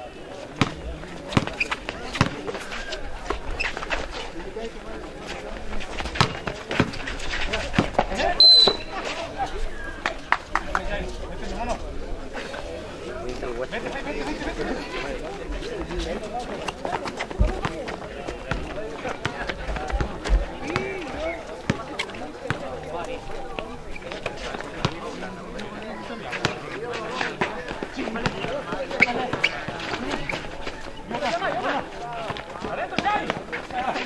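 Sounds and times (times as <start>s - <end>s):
spectators' voices: 0.0s - 34.0s
players' feet running: 0.3s - 11.6s, 14.9s - 34.0s
basketball bouncing on concrete: 0.6s - 2.6s, 6.0s - 7.0s, 17.3s - 21.0s, 22.5s - 22.7s, 26.4s - 26.6s.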